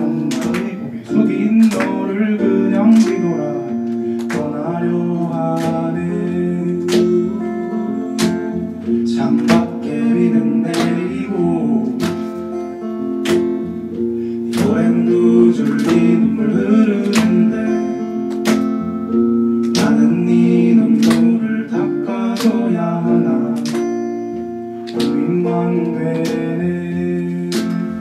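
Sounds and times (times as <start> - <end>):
acoustic guitar strumming chords: 0.0 - 28.0.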